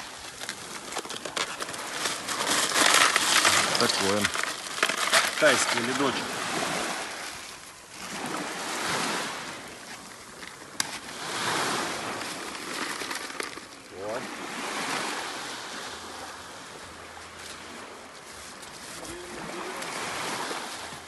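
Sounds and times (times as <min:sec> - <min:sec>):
small waves washing up a beach: 0:00.0 - 0:21.0.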